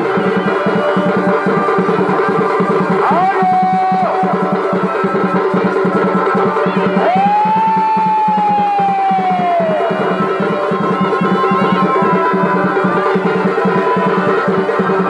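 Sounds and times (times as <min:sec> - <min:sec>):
fast driving drumming: 0:00.0 - 0:15.0
wind instrument melody: 0:00.0 - 0:15.0.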